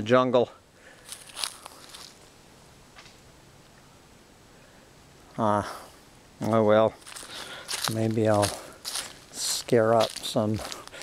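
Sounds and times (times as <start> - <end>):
faint footsteps: 0.9 - 2.3, 6.4 - 11.0.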